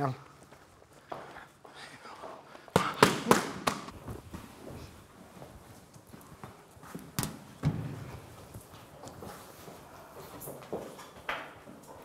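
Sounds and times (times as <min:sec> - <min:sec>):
boxing gloves smacking mitts: 0:02.7 - 0:04.0, 0:06.9 - 0:07.9.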